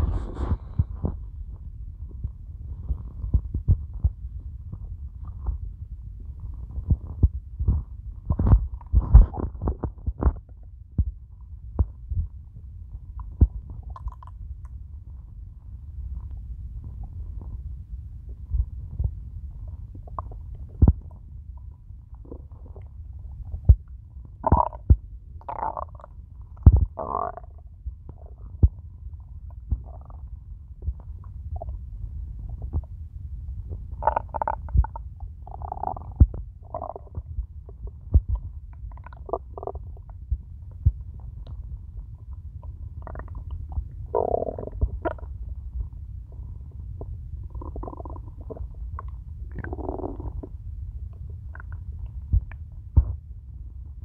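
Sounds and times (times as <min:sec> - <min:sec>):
stomach growling and gurgling: 0:00.0 - 0:53.4.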